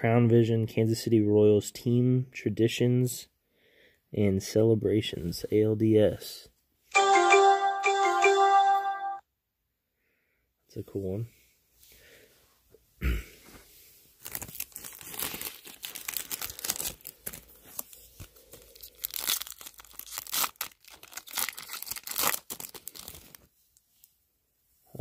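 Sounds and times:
wrapper tearing and crinkling: 14.2 - 23.5.

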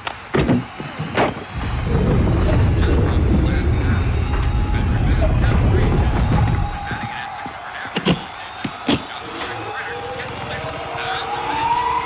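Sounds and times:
sharp bangs: 0.6 - 9.8
loud steady low rumble: 1.6 - 7.0.

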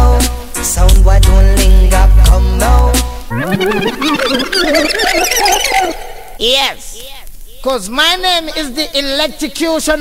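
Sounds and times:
high wavering squeals: 3.3 - 6.4.

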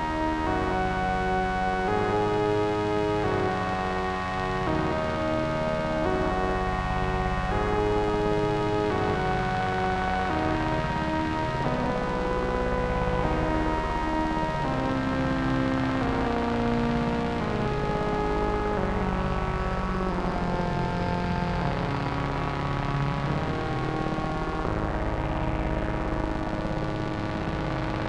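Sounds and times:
synthesizer pad chords: 0.0 - 28.0.

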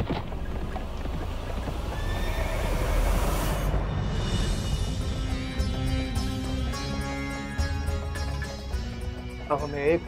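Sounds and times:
hoofbeats: 0.0 - 3.8
horse neighing: 1.9 - 3.5.

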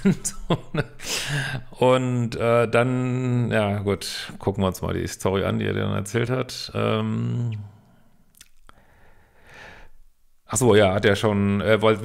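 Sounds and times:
soft breath: 7.5 - 10.0
lip or tongue clicks: 8.3 - 8.8.

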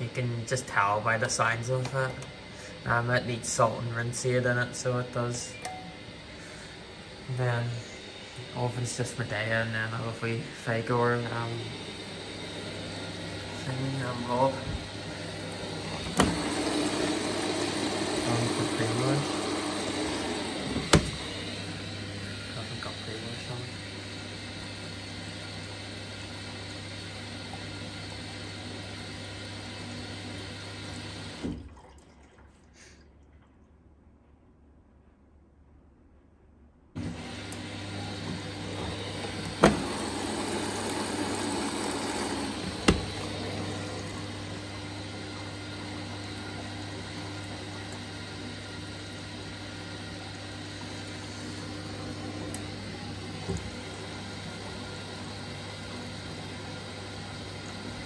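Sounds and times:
washing machine hum: 0.0 - 34.3, 36.9 - 58.0
water rushing into washing machine: 6.1 - 33.5, 37.0 - 58.0.

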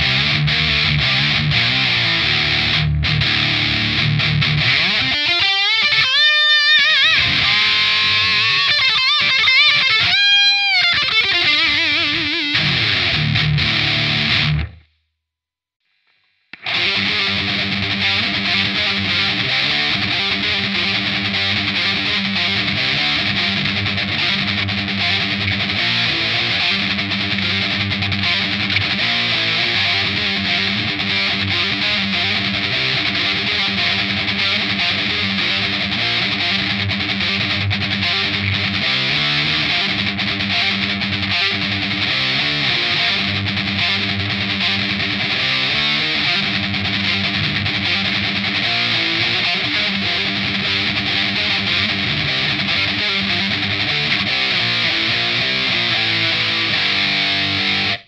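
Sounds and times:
distorted electric guitar lead: 0.0 - 15.0, 16.5 - 58.0
distorted electric guitar riff: 0.0 - 15.0, 16.0 - 58.0.

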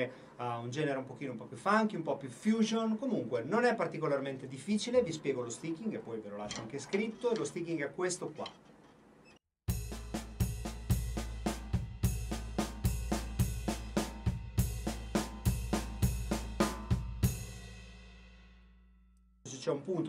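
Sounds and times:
drum kit fill: 9.7 - 18.6.

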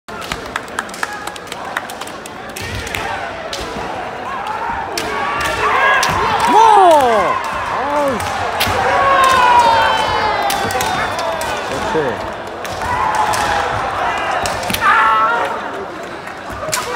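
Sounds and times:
people yelling: 2.9 - 15.9.

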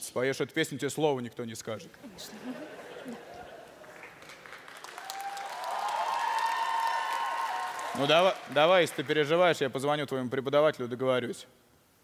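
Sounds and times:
crowd cheering: 2.3 - 9.1
audience applauding: 2.9 - 9.4.

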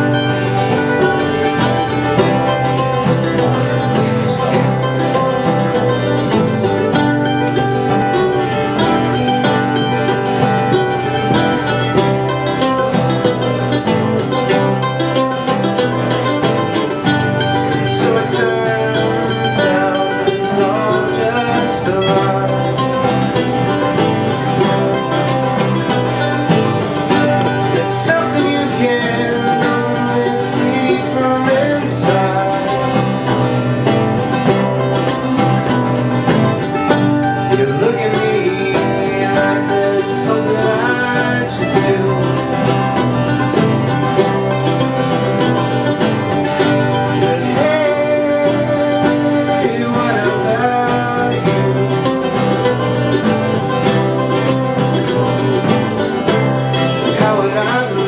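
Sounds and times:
acoustic string band playing: 0.0 - 58.0.

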